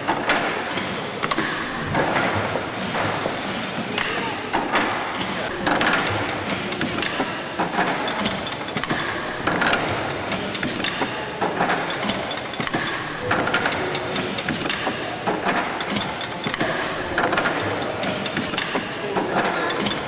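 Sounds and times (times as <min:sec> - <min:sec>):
lubricator clattering and clicking: 0:00.0 - 0:20.0
steam engine running slowly: 0:11.6 - 0:20.0.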